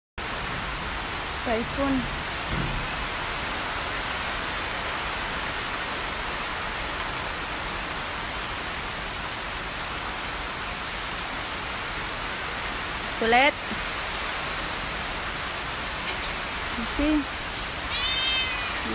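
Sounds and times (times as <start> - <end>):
heavy rain falling: 0.2 - 18.9.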